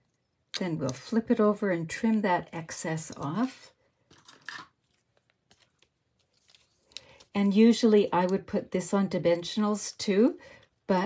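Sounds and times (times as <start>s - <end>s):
faint ticks of paper handling: 4.8s - 7.3s.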